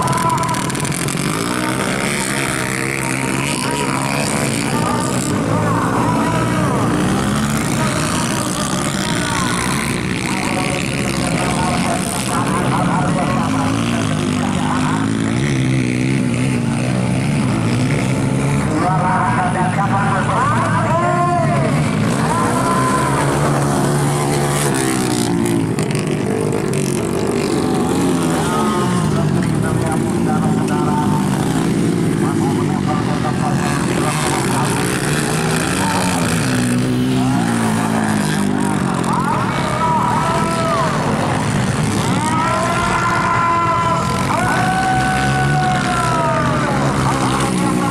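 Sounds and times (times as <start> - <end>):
dirt bike engines racing: 0.0 - 47.9.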